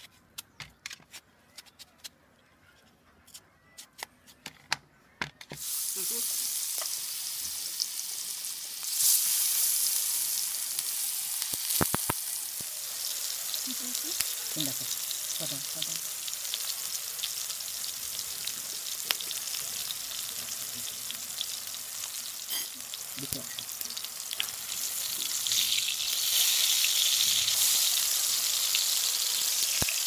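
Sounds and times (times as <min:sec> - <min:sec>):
food sizzling in hot oil: 0:05.6 - 0:30.0.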